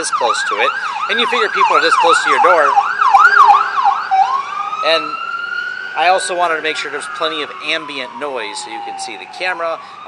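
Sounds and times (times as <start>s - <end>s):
ambulance siren: 0.0s - 10.0s.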